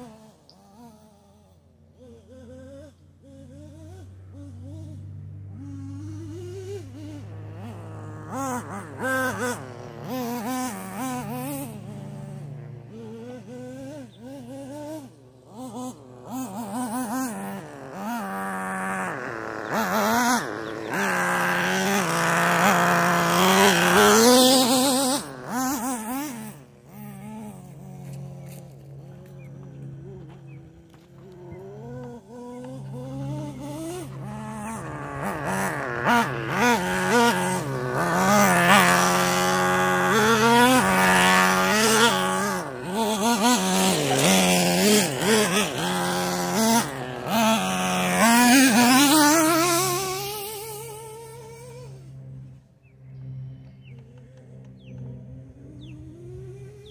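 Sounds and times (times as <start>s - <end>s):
rc truck engine revving: 0.0s - 56.9s.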